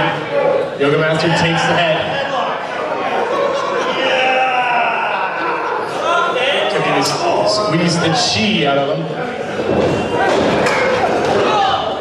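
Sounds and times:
voices in hall: 0.0s - 12.0s
wrestlers striking in ring: 9.5s - 11.9s.

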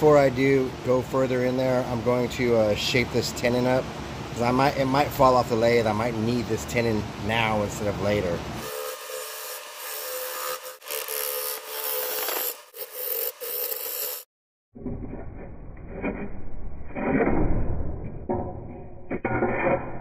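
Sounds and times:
lathe tool scraping wood: 8.6s - 14.3s.

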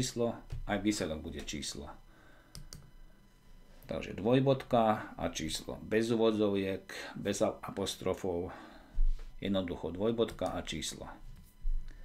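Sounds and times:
computer mouse clicks: 2.5s - 2.9s.

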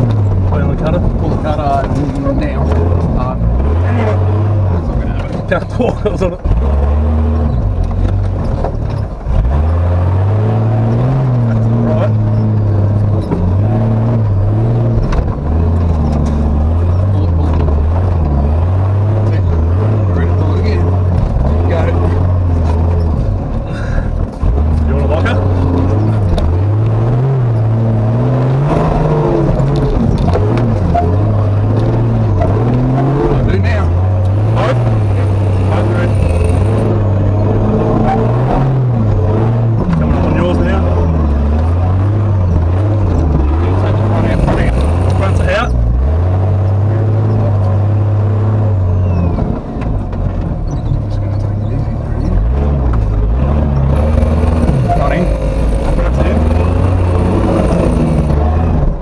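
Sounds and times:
truck engine revving: 0.0s - 59.0s.

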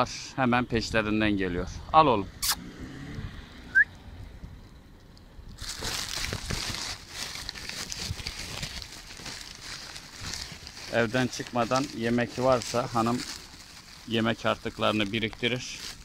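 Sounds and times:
rustling crinkling noise: 5.5s - 16.0s.

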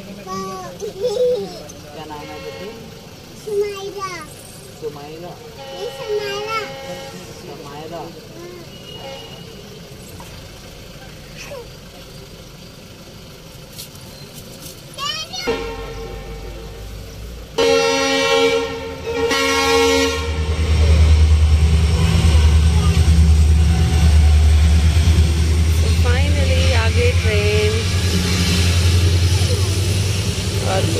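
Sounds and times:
train passing rumble: 0.0s - 30.9s
train horn blasts: 2.1s - 2.9s, 5.5s - 7.6s, 15.5s - 17.0s, 17.6s - 24.8s, 25.8s - 28.7s.

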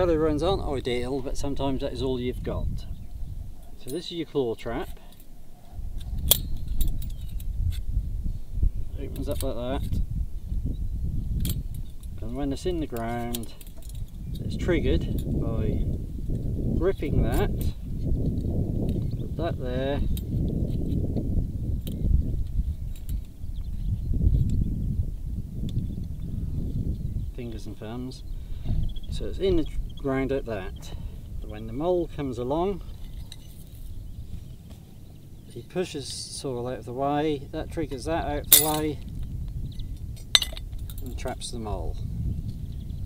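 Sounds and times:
wind buffeting microphone: 0.0s - 43.0s
faint metal trap clicks: 38.5s - 38.9s.

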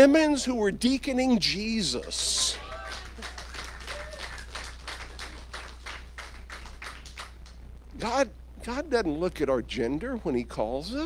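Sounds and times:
congregation applauding: 2.0s - 7.6s.

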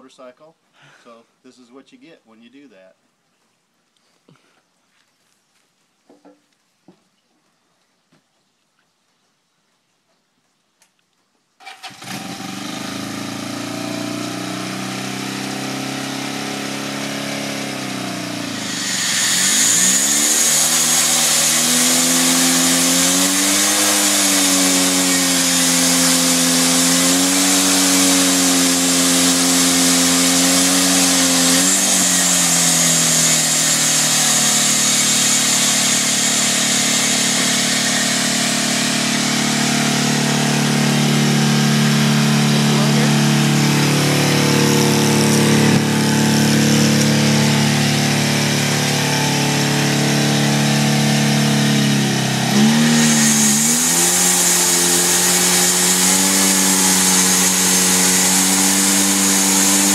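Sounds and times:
motorcycle engine running: 11.8s - 22.0s, 34.4s - 53.3s
band saw blade hiss: 18.6s - 22.2s.

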